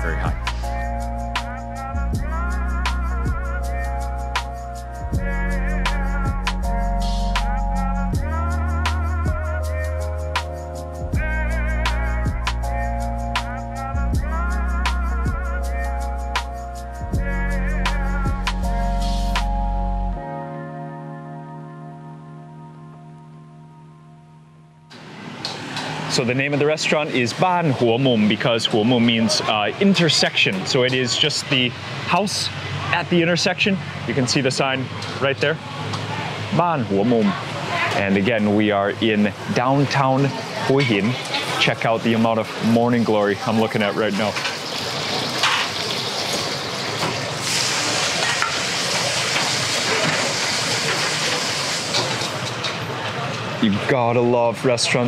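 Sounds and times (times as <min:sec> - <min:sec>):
held chord of background music: 0:00.0 - 0:24.9
busy street traffic: 0:24.9 - 0:55.0
gas burner rushing: 0:44.4 - 0:53.6
vegetables sizzling in a wok: 0:44.5 - 0:52.4.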